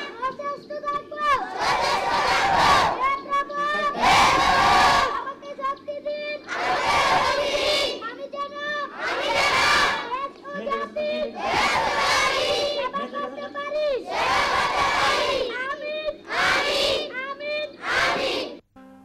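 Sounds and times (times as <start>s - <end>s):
children chanting in unison: 1.2s - 5.2s, 6.1s - 13.1s, 13.7s - 18.6s.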